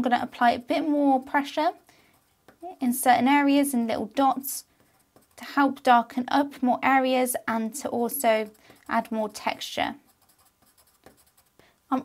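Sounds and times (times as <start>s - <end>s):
pencil scratching on paper: 0.4s - 2.7s, 4.2s - 5.8s, 7.9s - 11.6s.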